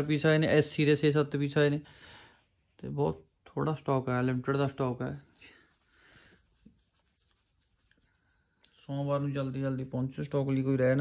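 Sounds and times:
man speaking: 0:00.0 - 0:01.8, 0:08.8 - 0:11.0.

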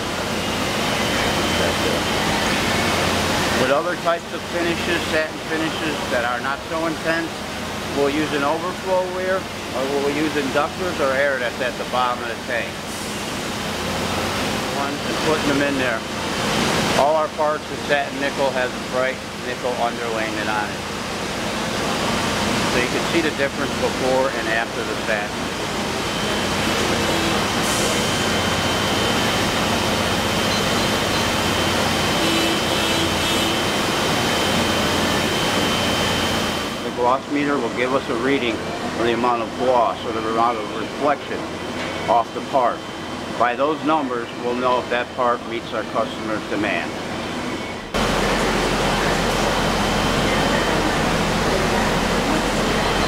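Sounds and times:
machinery rushing with low hum: 0:09.3 - 0:53.0
machine rushing hiss: 0:22.8 - 0:36.9
thin high whine: 0:22.8 - 0:53.0
person speaking: 0:48.0 - 0:53.0.

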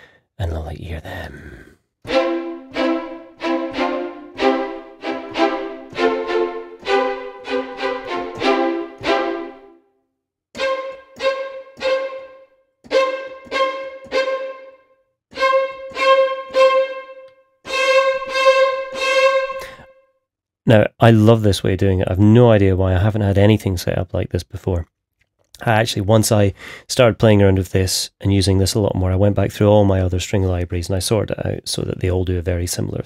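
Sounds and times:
violins playing short staccato notes: 0:02.1 - 0:09.7, 0:10.6 - 0:14.8, 0:15.4 - 0:20.0.

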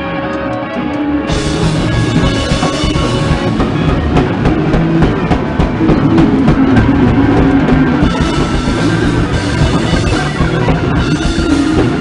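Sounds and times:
held low instrument tones: 0:00.0 - 0:12.0
drum kit dense hits: 0:01.3 - 0:12.0.

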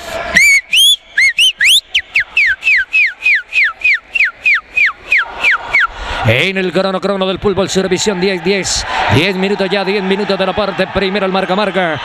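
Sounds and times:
whistle-like chirps: 0:00.4 - 0:05.9.

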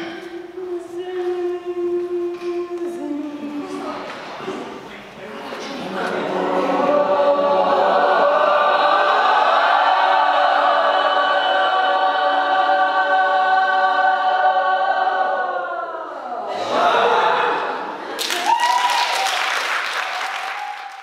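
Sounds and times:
group singing a held chord: 0:05.7 - 0:18.0.

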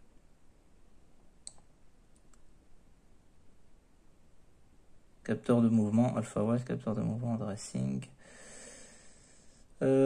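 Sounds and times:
faint sharp clicks: 0:01.4 - 0:02.5.

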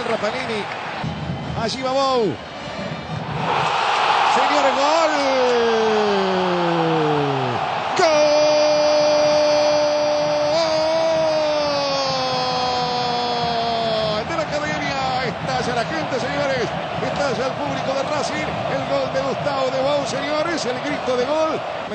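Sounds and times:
stadium crowd noise: 0:00.0 - 0:21.9.

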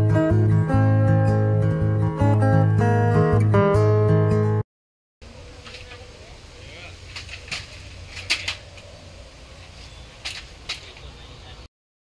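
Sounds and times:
outdoor background noise: 0:05.2 - 0:11.7.

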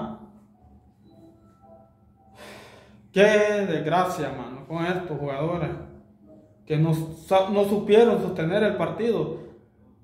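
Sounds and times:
man inhaling: 0:02.3 - 0:03.1.

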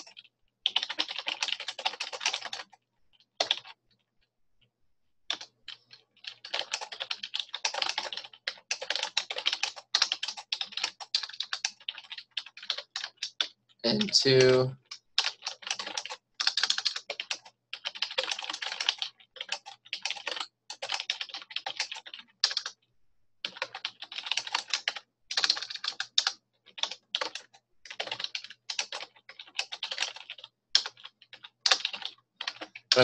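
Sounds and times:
typing on computer keyboard: 0:00.0 - 0:03.9, 0:05.3 - 0:22.8, 0:23.4 - 0:33.0.

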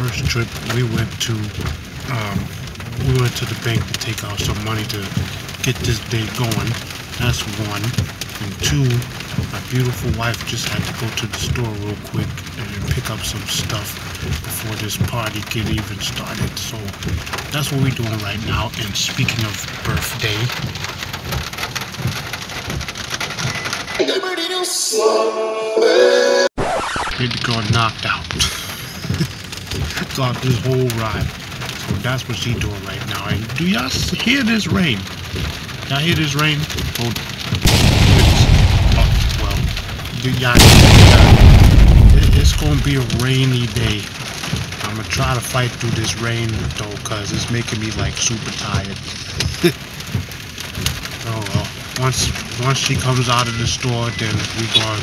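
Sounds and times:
man's voice: 0:00.0 - 0:20.6, 0:24.0 - 0:26.5, 0:27.1 - 0:35.1, 0:35.9 - 0:44.1, 0:44.8 - 0:49.8, 0:51.2 - 0:55.0
rain pattering on car roof: 0:00.0 - 0:24.6, 0:26.8 - 0:55.0.

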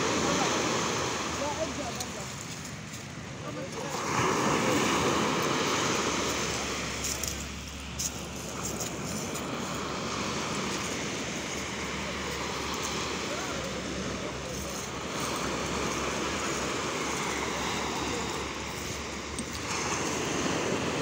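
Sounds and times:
small waves washing over sand: 0:00.0 - 0:21.0.

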